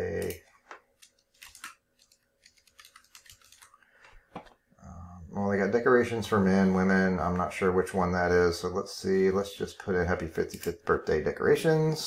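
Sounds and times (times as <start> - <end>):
keyboard clicking: 1.0 - 3.7.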